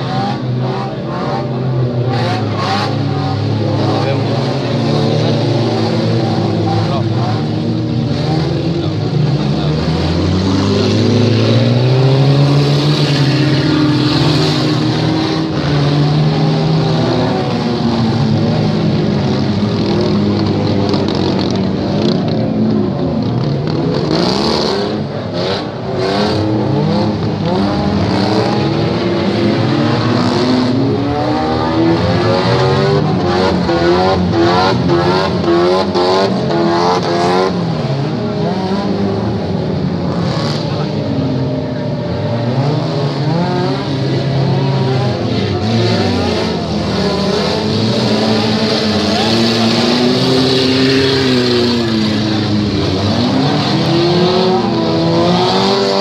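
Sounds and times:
car engines revving: 0:00.0 - 0:56.0.

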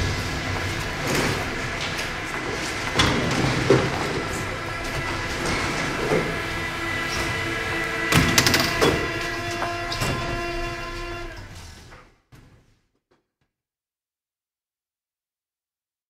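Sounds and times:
train rail clatter: 0:00.0 - 0:09.1
steady held tones: 0:04.0 - 0:11.5.

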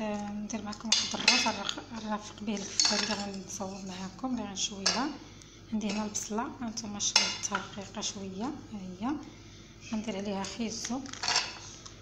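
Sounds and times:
utensil clinking on steel bowl: 0:00.1 - 0:03.5, 0:04.8 - 0:05.1, 0:10.4 - 0:11.6.

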